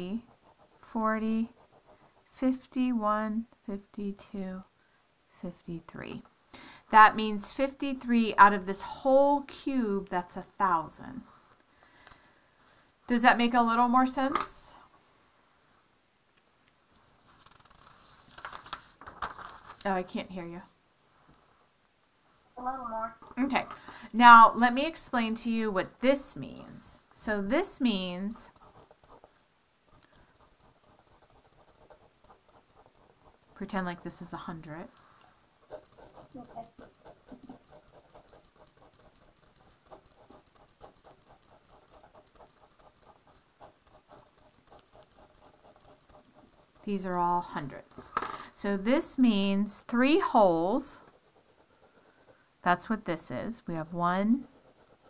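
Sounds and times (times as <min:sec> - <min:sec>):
pencil scratching on paper: 0:00.0 - 0:02.7, 0:16.9 - 0:18.7, 0:24.2 - 0:34.9, 0:35.6 - 0:47.9, 0:50.2 - 0:55.0
paper rustling and scraping: 0:17.4 - 0:19.9.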